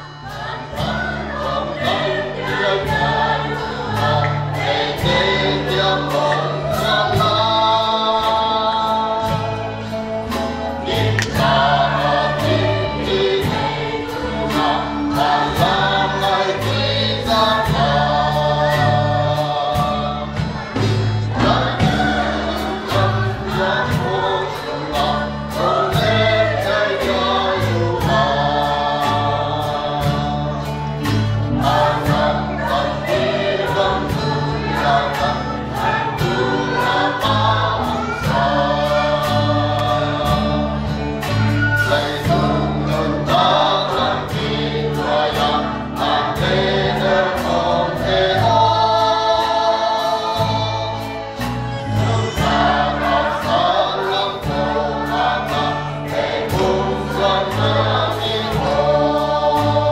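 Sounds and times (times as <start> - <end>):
choir singing: 0.0 - 59.9
instrumental accompaniment with beat: 0.0 - 59.9.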